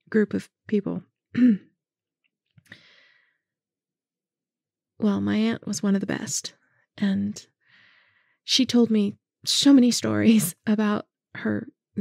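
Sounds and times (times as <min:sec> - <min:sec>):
woman clearing her throat: 0:01.4 - 0:01.8.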